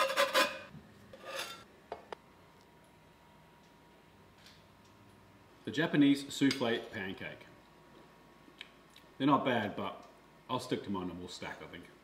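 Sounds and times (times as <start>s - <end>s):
metal utensil scraping a pan: 0.0s - 1.7s.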